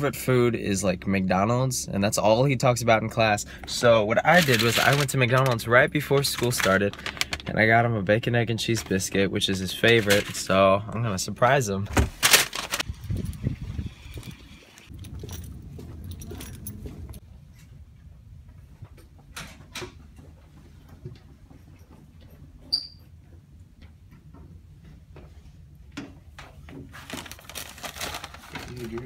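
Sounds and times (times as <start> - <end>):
paper bag crinkling: 4.2 - 7.6, 8.7 - 10.6, 12.0 - 13.3, 26.9 - 29.0
low rumble: 12.8 - 18.8.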